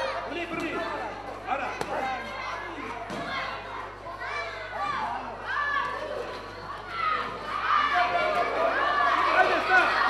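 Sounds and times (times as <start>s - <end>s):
young voices shouting: 1.6s - 10.0s.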